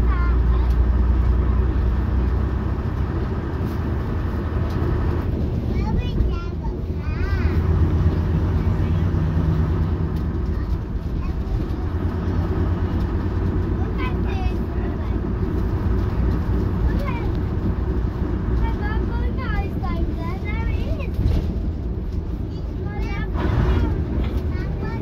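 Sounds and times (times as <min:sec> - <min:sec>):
diesel engine droning: 0:00.0 - 0:25.0
passengers talking: 0:00.0 - 0:25.0.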